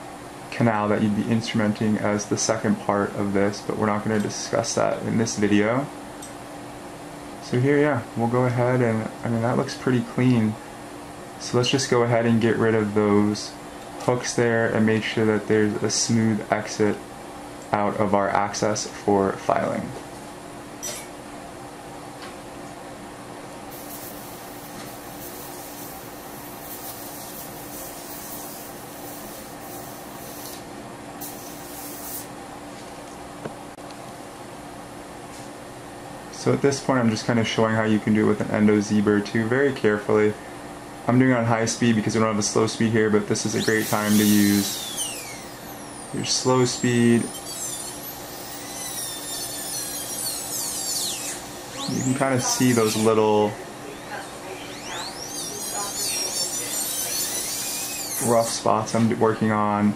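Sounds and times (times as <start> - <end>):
steady low hum: 0.0 - 59.9
dental drill whining: 23.7 - 30.6, 31.2 - 32.3, 43.4 - 58.7
compressed air hissing: 23.7 - 32.3, 43.5 - 53.2, 54.8 - 58.6.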